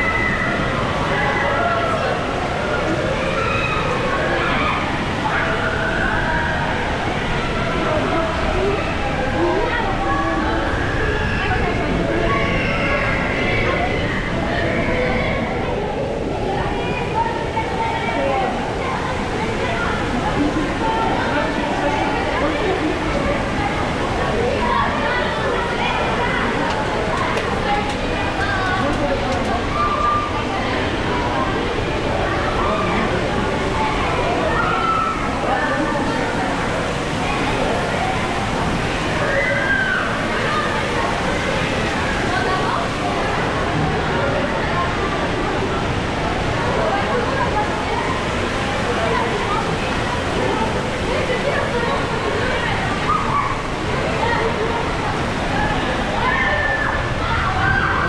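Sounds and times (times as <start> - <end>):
many overlapping voices: 0.0 - 58.0
running and splashing water: 0.0 - 58.0.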